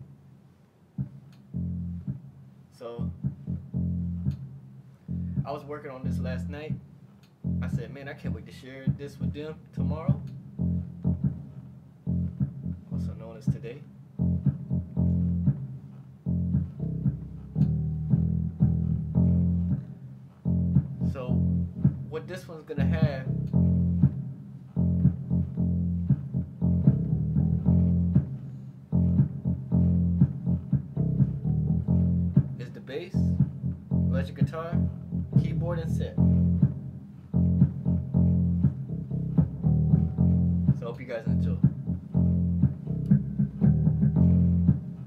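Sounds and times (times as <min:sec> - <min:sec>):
funky keyboard bass line: 0:01.0 - 0:45.0.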